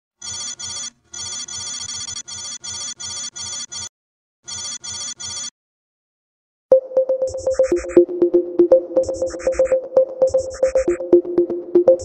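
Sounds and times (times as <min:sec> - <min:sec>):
electronic beeping pulses: 0:06.7 - 0:12.0.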